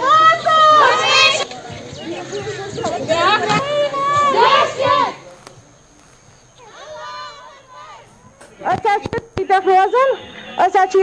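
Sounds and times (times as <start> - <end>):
women shouting in protest: 0.0 - 1.4, 2.9 - 5.2, 6.6 - 9.1.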